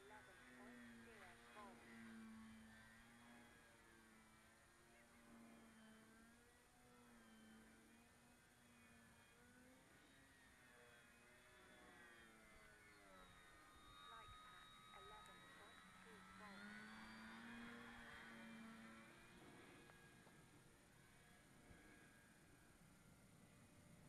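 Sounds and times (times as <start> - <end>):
model plane motor drone: 0.0 - 24.0.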